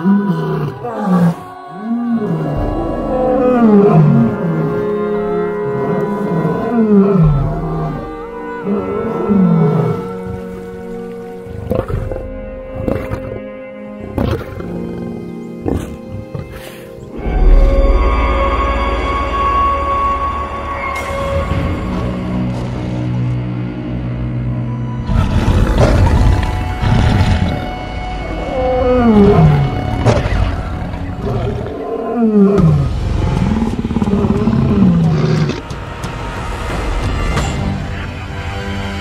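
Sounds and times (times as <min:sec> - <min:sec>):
lionesses growling: 0:00.0 - 0:17.6, 0:25.0 - 0:35.9
background music with held tones: 0:01.1 - 0:39.0
lion roaring: 0:02.0 - 0:05.0, 0:25.0 - 0:35.8.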